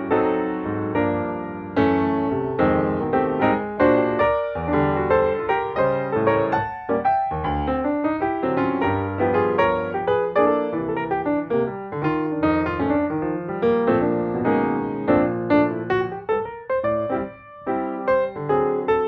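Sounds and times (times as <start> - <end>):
piano music: 0.0 - 19.0.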